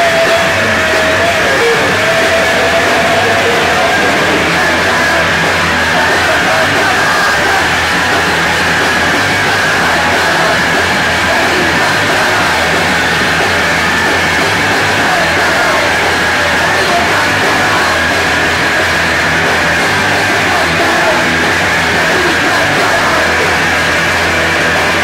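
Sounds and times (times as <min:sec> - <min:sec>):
punk rock band playing: 0:00.0 - 0:25.0.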